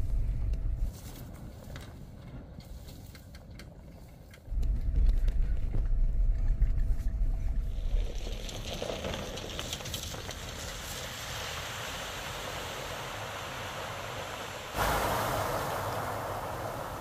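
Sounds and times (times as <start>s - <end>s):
engine and road noise rumble: 0.0s - 17.0s
wind: 0.0s - 17.0s
stream water running: 7.7s - 17.0s.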